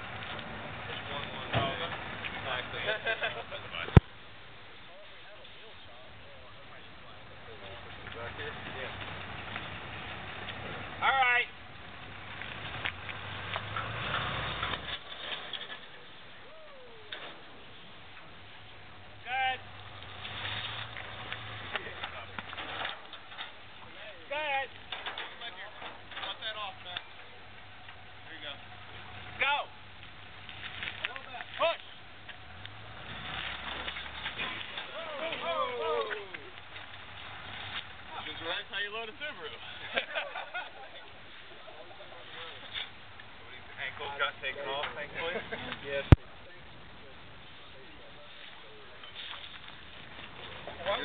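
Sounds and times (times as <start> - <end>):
low engine hum: 5.8 - 15.1
people calling out and talking: 15.9 - 20.3, 33.9 - 51.0.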